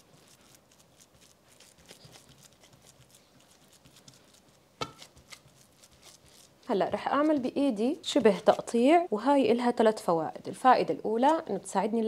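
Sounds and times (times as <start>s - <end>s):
gloved hands patting meat mixture: 0.0s - 8.8s.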